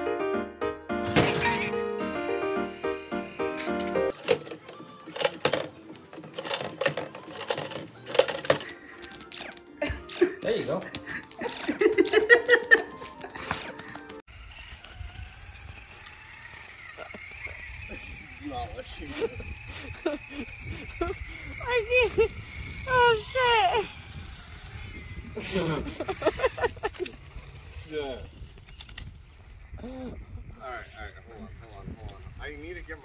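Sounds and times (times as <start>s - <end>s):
electric motor whine: 1.9s - 7.0s, 14.3s - 33.0s.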